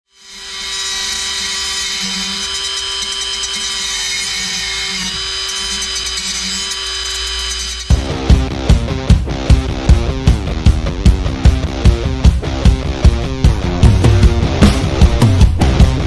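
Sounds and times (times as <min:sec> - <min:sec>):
die grinder whining: 0:00.1 - 0:08.3.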